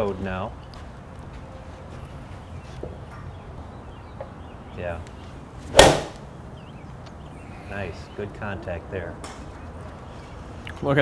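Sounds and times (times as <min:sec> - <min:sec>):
golf iron striking ball: 0:05.7 - 0:06.3.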